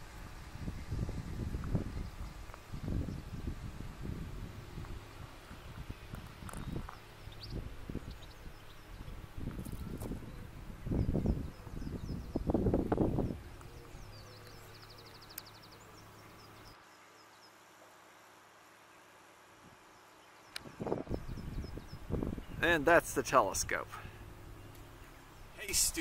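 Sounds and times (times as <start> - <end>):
small birds chirping: 0.0 - 17.8, 19.8 - 26.0
bird trill: 13.1 - 16.8.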